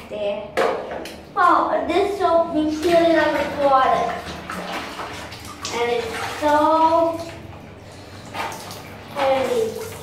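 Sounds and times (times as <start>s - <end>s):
water sloshing in a plastic basin: 0.1s - 10.0s
water splash: 2.7s - 10.0s.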